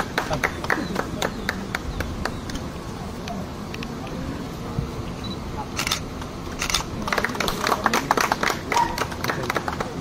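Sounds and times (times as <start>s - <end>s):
low background voices: 0.0s - 10.0s
camera shutters clicking: 5.7s - 6.9s.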